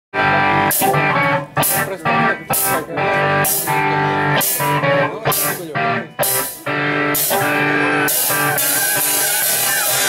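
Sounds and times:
electric guitar chords: 0.1s - 10.0s
live rock band playing: 0.1s - 10.0s.

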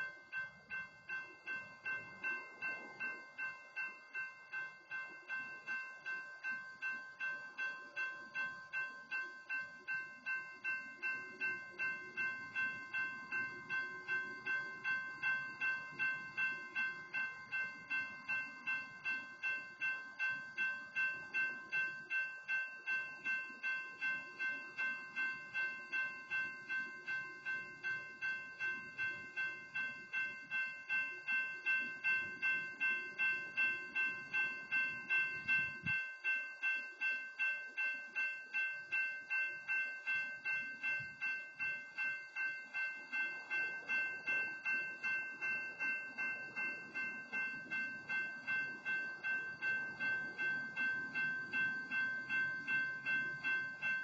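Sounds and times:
railroad crossing bell ringing: 0.0s - 54.0s.

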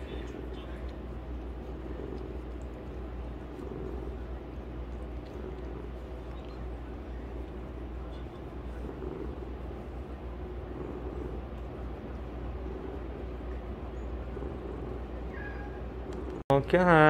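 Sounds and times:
cat purring: 0.0s - 16.4s.

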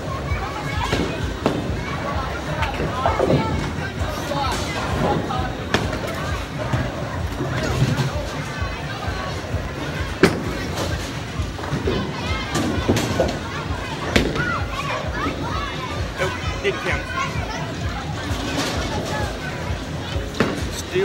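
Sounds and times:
people chatting: 0.0s - 21.0s.

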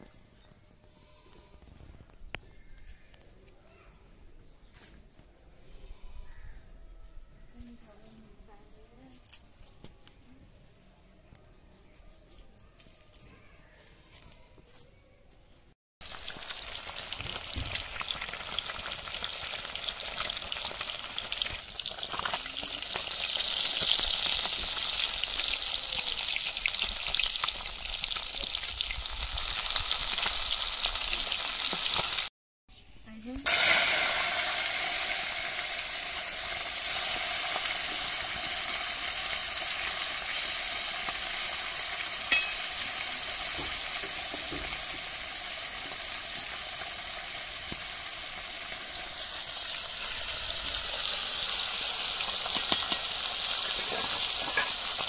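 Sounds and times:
fish frying in hot oil: 16.0s - 32.3s, 33.5s - 55.0s.

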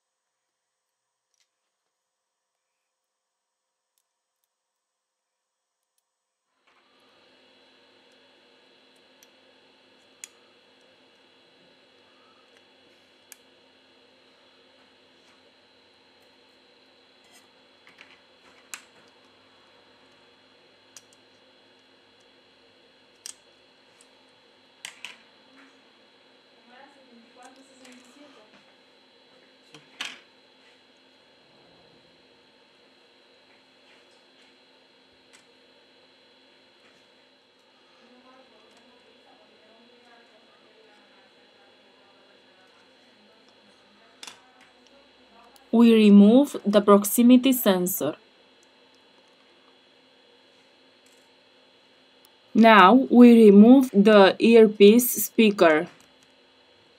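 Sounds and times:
faint hum: 0.0s - 56.1s.

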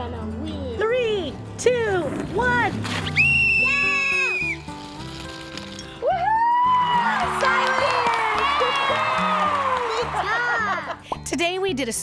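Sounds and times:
background music: 0.0s - 12.0s
whistle blast: 3.1s - 4.7s
children shrieking and cheering: 6.0s - 11.0s.

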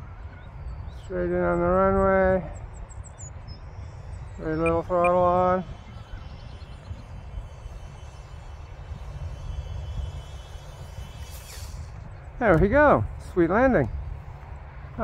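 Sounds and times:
wind rumbling on microphone: 0.0s - 15.0s
electric model plane motor whine: 2.6s - 12.6s.

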